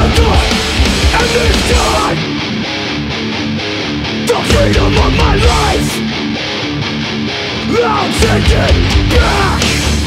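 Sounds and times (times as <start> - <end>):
distorted electric guitar riff: 0.0 - 10.0
punk band playing: 0.0 - 10.0
person shouting vocals: 4.3 - 6.0, 7.6 - 9.8.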